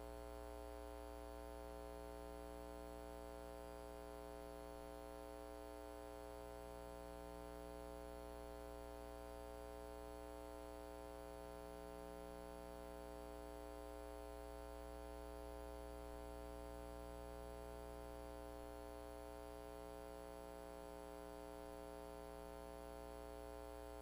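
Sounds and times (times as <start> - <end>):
electrical mains hum: 0.0 - 24.0.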